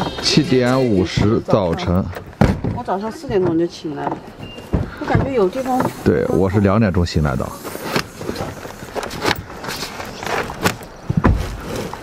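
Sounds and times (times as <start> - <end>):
luggage knocking and scraping: 0.0 - 6.2, 7.7 - 12.0.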